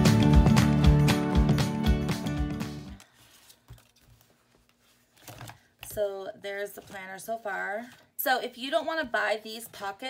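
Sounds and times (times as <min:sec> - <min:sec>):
paper pages being turned: 0:02.8 - 0:06.0, 0:06.6 - 0:08.0
woman speaking: 0:05.9 - 0:10.0.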